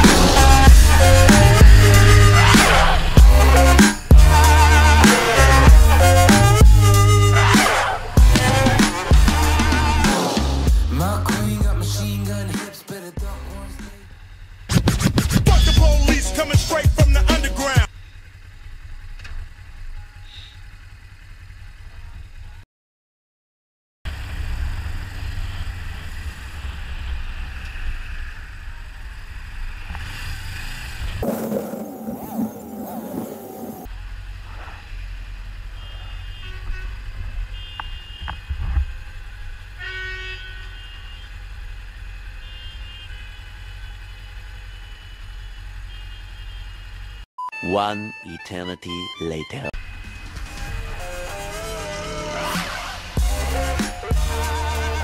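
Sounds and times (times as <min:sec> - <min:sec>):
car horns honking: 0:00.0 - 0:10.2, 0:35.6 - 0:55.0
low engine rumble: 0:00.0 - 0:22.6, 0:24.1 - 0:47.3
motorcycle engine idling: 0:11.1 - 0:14.7, 0:15.5 - 0:22.6, 0:24.1 - 0:32.8, 0:33.4 - 0:47.2.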